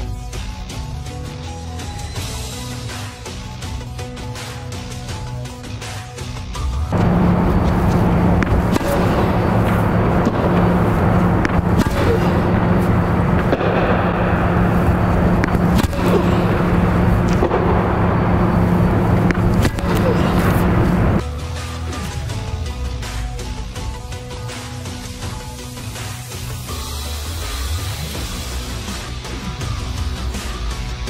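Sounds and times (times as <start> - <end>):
steady low hum: 6.9 - 21.2
tennis racket hitting ball: 7.0 - 21.2.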